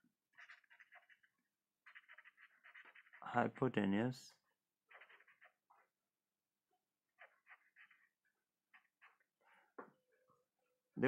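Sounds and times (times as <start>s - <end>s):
pen scratching on paper: 0.2s - 3.8s, 4.5s - 6.1s, 7.0s - 9.4s.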